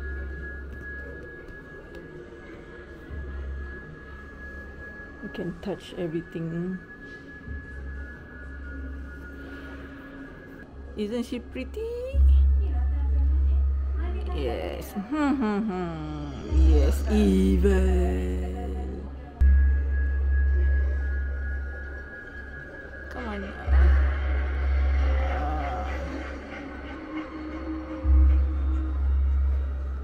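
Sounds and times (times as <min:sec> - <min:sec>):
deep low drone: 0:12.2 - 0:30.0
steady high tone: 0:15.0 - 0:30.0.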